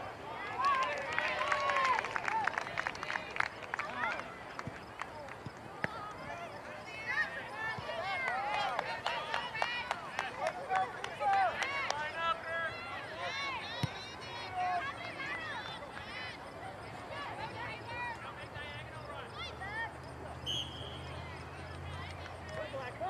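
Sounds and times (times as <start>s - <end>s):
distant people shouting: 5.8s - 22.8s.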